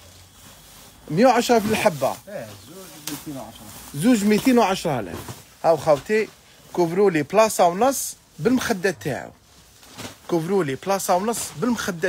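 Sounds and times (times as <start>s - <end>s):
plastic bag rustling: 0.0s - 12.0s
man speaking: 1.1s - 9.4s, 10.3s - 12.0s.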